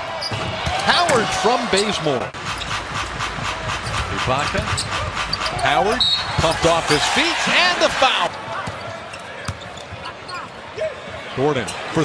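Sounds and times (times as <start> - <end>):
arena crowd murmur: 7.1 - 12.0.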